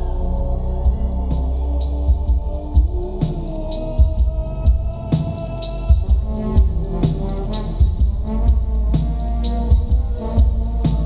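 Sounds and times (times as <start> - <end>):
slowed hip-hop instrumental beat: 0.0 - 11.0.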